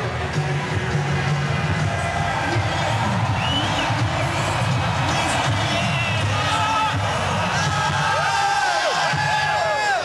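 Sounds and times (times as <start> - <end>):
arena crowd cheering: 0.0 - 10.0
loud music: 0.0 - 10.0.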